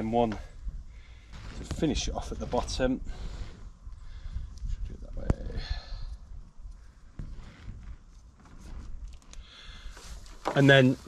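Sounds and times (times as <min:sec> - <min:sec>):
wind buffeting microphone: 0:00.0 - 0:10.3
faint rustling: 0:06.3 - 0:11.0.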